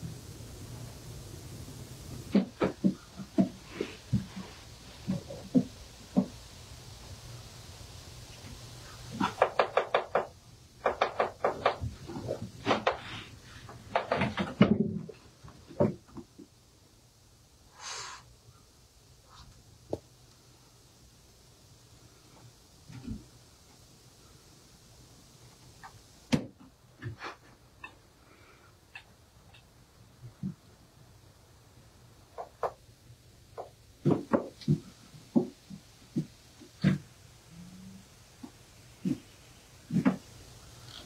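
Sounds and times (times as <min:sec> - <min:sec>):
sharp clicks and knocks: 0:09.2 - 0:12.0.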